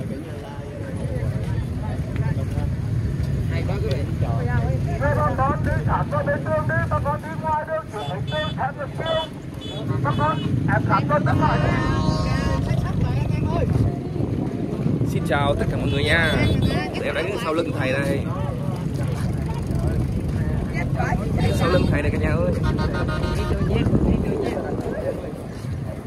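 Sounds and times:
crowd talking: 0:00.0 - 0:26.0.

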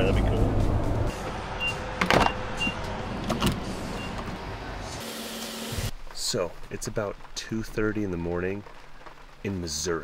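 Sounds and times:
truck cabin hum: 0:00.0 - 0:05.0.

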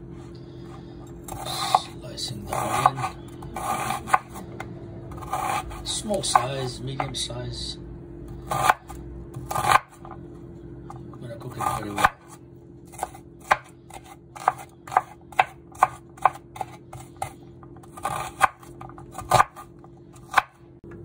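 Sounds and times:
knife chopping on cutting board: 0:02.5 - 0:04.4, 0:05.1 - 0:07.1, 0:08.5 - 0:10.1, 0:11.5 - 0:20.6.

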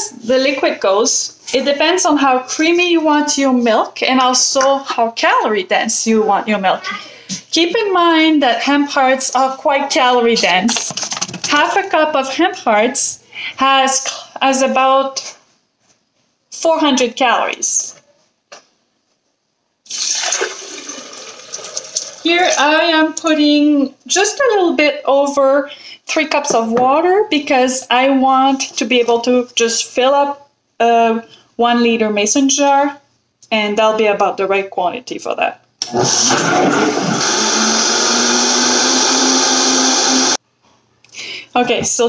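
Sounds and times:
blender whirring: 0:19.9 - 0:22.1, 0:35.8 - 0:40.4
water pouring into blender jar: 0:19.9 - 0:22.3.

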